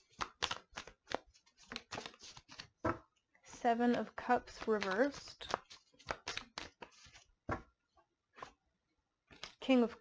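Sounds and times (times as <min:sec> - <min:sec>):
cards being shuffled: 0:00.0 - 0:03.1, 0:03.7 - 0:07.7, 0:09.3 - 0:09.6.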